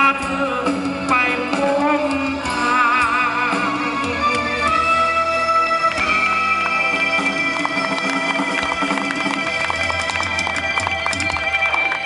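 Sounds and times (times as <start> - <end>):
live band through speakers: 0.0 - 12.0.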